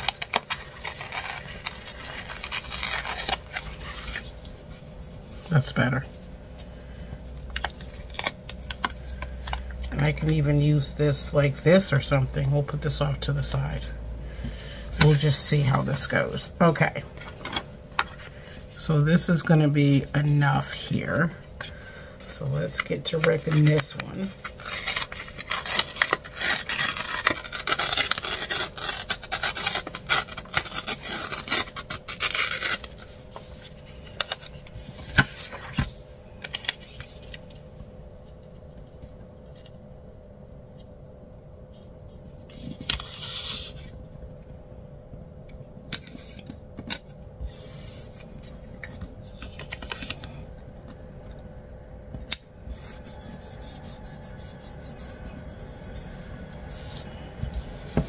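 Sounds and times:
paper sticker tearing: 0:00.0 - 0:04.3, 0:22.7 - 0:33.1
paper rustling: 0:00.0 - 0:10.4, 0:14.4 - 0:16.4, 0:21.6 - 0:37.7, 0:47.4 - 0:50.4.

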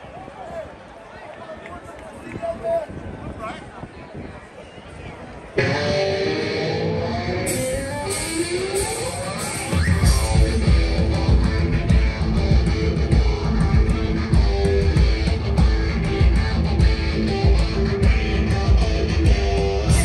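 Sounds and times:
electric guitar riff: 0:05.6 - 0:20.0
live rock band playing: 0:05.6 - 0:20.0.

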